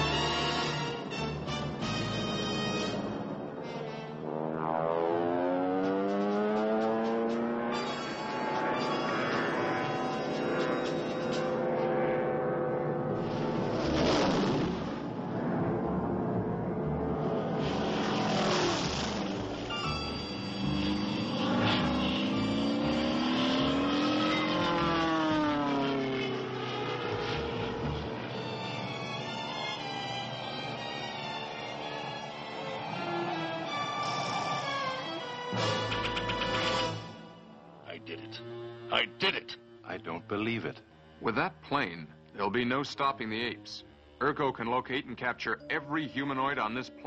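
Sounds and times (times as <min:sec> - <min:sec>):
music: 0:00.0 - 0:04.2, 0:07.4 - 0:11.6, 0:19.3 - 0:23.8, 0:27.7 - 0:47.0
propeller plane engine: 0:00.0 - 0:44.2.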